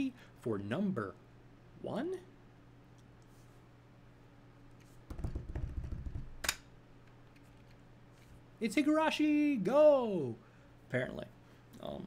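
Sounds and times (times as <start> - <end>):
drumroll of dull thumps: 5.1 - 6.4.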